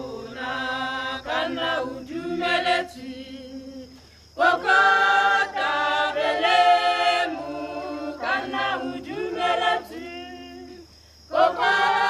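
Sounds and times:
choir singing unaccompanied: 0:00.0 - 0:12.0.

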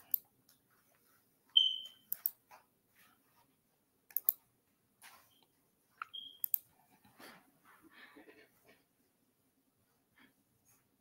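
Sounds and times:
high electronic beep: 0:01.6 - 0:02.1, 0:06.1 - 0:06.6
sharp clicks: 0:02.1 - 0:02.4, 0:04.1 - 0:04.4, 0:06.0 - 0:06.7.

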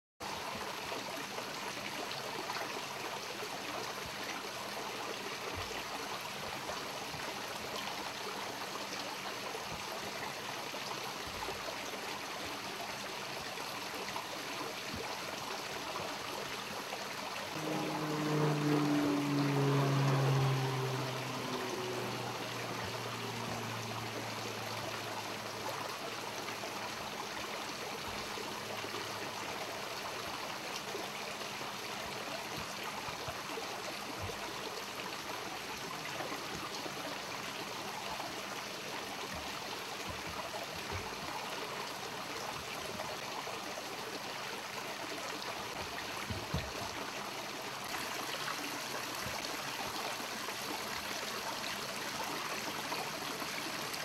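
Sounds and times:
water trickling into pond: 0:00.2 - 0:54.0
low hum falling in pitch: 0:17.5 - 0:29.2.

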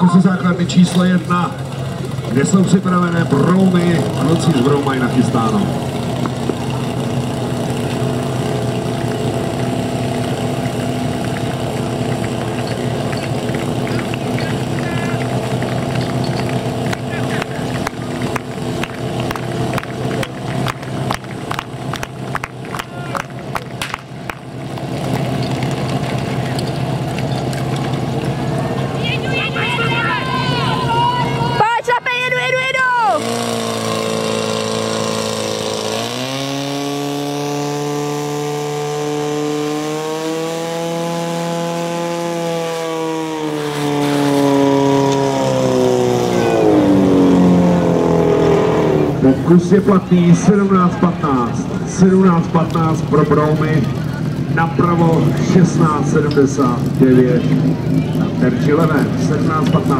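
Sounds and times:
fire pump engine running: 0:00.0 - 0:59.9.

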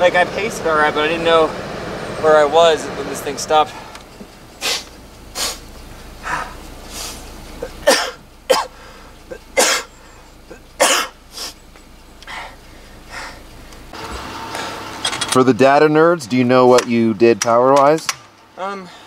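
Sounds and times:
man coughing: 0:07.6 - 0:09.9, 0:10.5 - 0:11.2.

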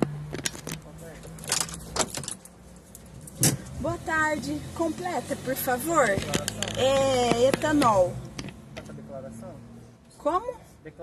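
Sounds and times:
car keys jangling: 0:00.4 - 0:03.7.

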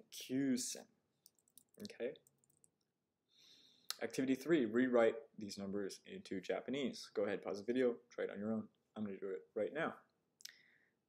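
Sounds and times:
man speaking: 0:00.0 - 0:00.9, 0:01.8 - 0:02.2, 0:03.9 - 0:10.0.

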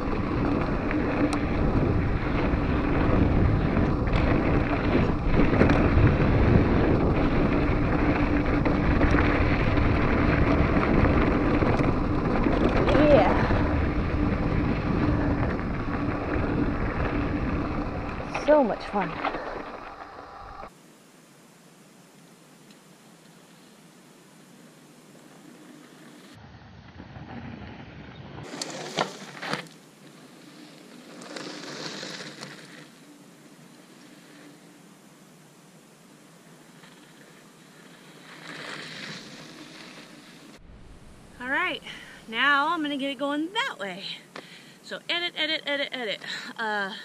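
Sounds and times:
wind rush on camera: 0:00.0 - 0:20.7
outdoor hiss: 0:18.4 - 0:26.4, 0:28.5 - 0:47.0
tyres crunching over gravel: 0:28.5 - 0:33.0.

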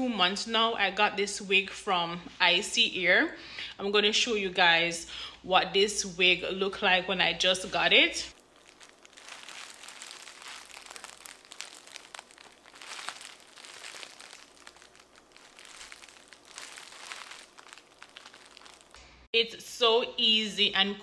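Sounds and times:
wig rustling under fingers: 0:08.3 - 0:19.0.

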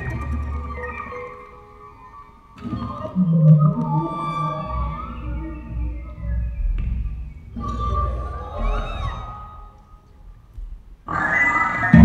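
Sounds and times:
double bass bowed: 0:02.6 - 0:09.8.

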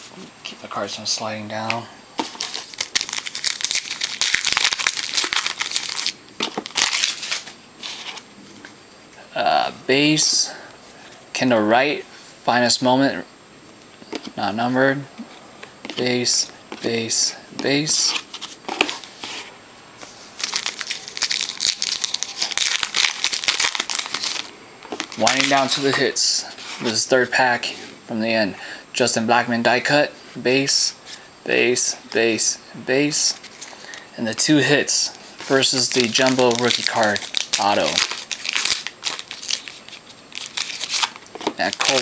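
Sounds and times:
foil wrapper tearing and crinkling: 0:02.2 - 0:08.0, 0:20.4 - 0:26.0, 0:35.4 - 0:42.0.

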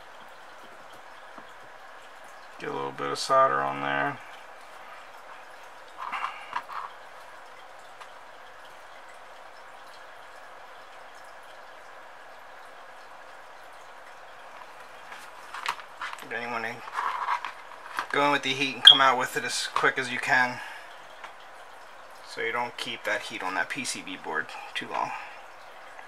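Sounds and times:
handling sounds: 0:15.1 - 0:18.1
person speaking softly: 0:22.3 - 0:25.4.

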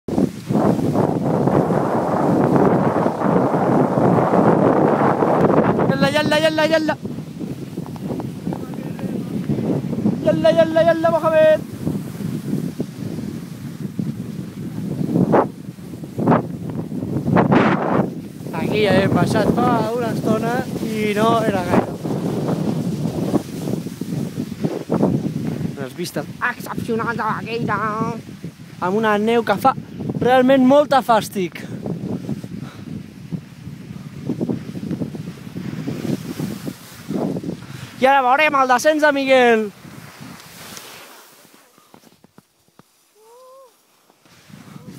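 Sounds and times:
wind buffeting microphone: 0:00.1 - 0:42.8, 0:44.3 - 0:44.9.

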